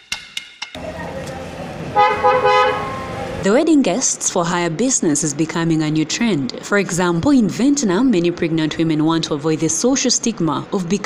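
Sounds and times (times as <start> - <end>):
car horn honking: 0.8 - 3.4
street background noise: 0.8 - 11.0.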